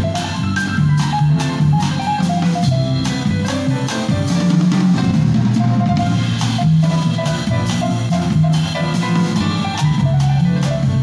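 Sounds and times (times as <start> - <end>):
double bass walking line: 0.0 - 11.0
drum kit with cymbals: 0.0 - 11.0
grand piano: 0.0 - 11.0.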